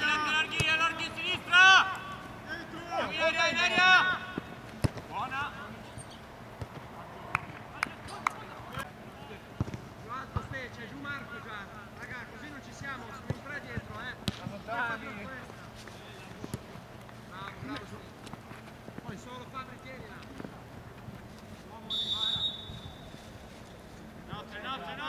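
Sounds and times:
players shouting: 0.0 - 5.8
shrill referee whistle blast: 21.9 - 23.2.

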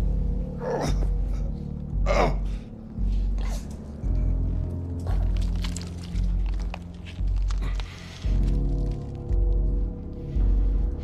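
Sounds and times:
low droning music with pulsing bass: 0.0 - 11.0.

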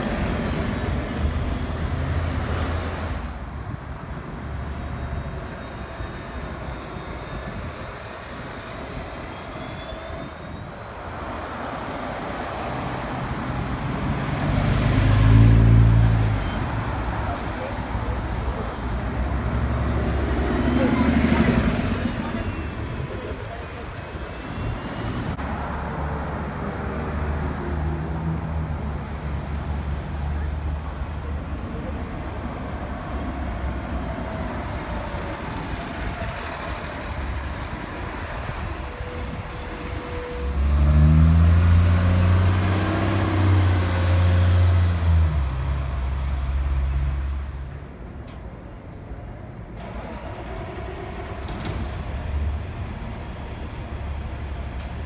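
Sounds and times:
bus passing: 0.0 - 55.0
bus engine revving: 40.4 - 45.2, 49.8 - 52.8.

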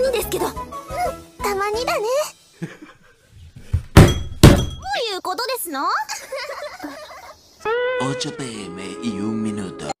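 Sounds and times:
loud thuds: 3.6 - 4.8.

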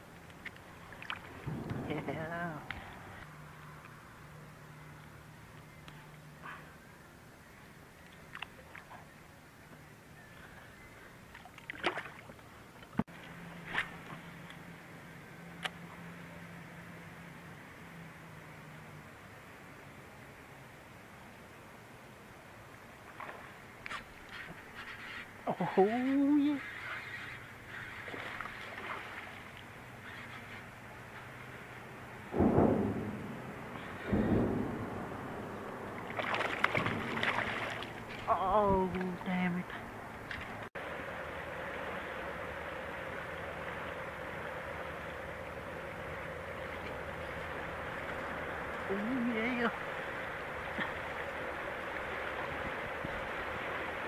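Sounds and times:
water splashing and sloshing: 0.0 - 4.2, 7.7 - 9.5, 10.5 - 17.9, 22.4 - 54.0
paddle sloshing in water: 0.4 - 1.5, 11.3 - 14.3, 27.8 - 30.6, 35.9 - 38.4
fish thrashing and splashing: 36.0 - 38.3.

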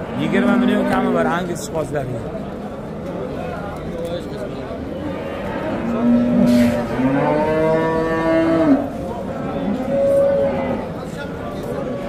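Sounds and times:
livestock market hubbub: 0.0 - 12.0
cattle mooing: 0.1 - 1.3, 5.1 - 8.9, 9.6 - 11.0.

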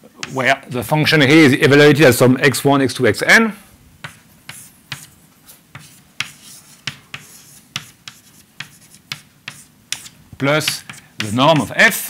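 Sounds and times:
chalk tapping on blackboard: 0.2 - 0.4, 4.0 - 5.1, 5.7 - 12.0.

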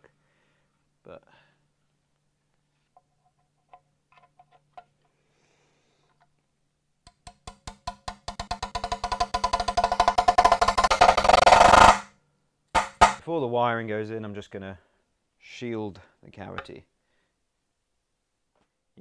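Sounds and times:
drum roll: 7.3 - 12.1, 12.8 - 13.2
sharp drum hit: 8.1 - 12.1, 12.8 - 13.2.

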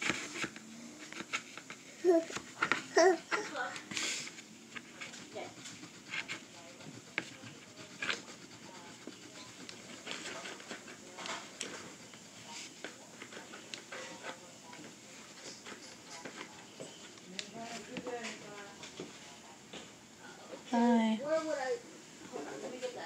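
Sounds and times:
crayons tapping and clicking: 0.0 - 4.0, 4.7 - 19.1
crayons scratching on paper: 0.0 - 19.1.

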